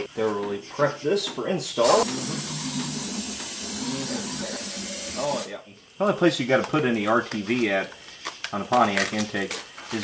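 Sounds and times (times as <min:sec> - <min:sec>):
spray can hissing: 0:01.8 - 0:05.5.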